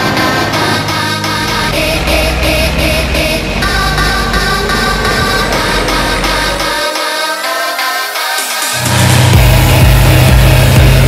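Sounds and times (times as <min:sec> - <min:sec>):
tractor diesel engine running: 0:00.0 - 0:07.8, 0:08.5 - 0:11.0.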